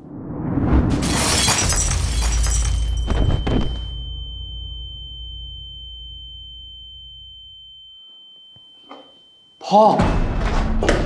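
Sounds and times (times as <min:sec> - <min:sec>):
crash: 0:00.0 - 0:04.6
low rumble: 0:00.0 - 0:06.8
high-pitched ringing tone: 0:02.5 - 0:10.0.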